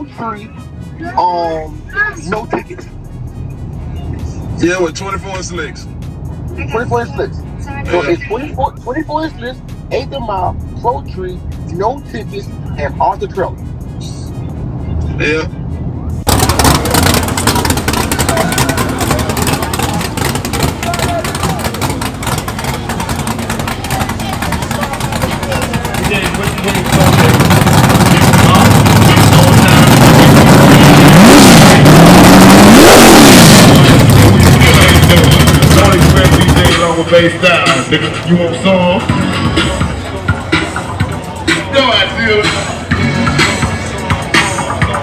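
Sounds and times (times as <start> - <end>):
car engine revving: 0.0 - 45.0
crowd chatter: 14.0 - 31.9, 33.5 - 45.0.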